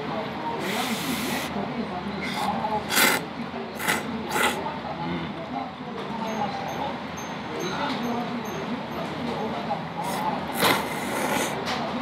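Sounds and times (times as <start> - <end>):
person slurping noodles: 2.2 - 4.6, 10.0 - 11.6.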